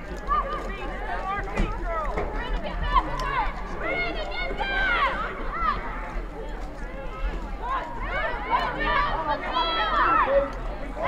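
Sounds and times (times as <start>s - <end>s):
high voices shouting: 0.2s - 6.1s, 7.0s - 10.6s.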